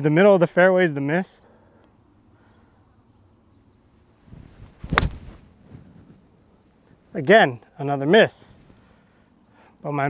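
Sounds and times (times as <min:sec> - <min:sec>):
golf club swing whoosh: 0:04.3 - 0:06.2
golf club striking ball: 0:04.9 - 0:05.3.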